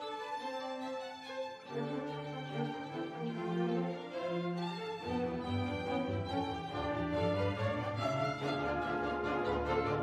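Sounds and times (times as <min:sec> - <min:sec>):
bowed strings: 0:00.0 - 0:10.0.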